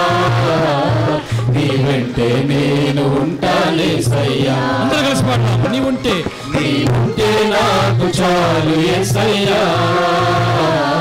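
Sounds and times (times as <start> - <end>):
man singing a devotional hymn: 0.0 - 11.0.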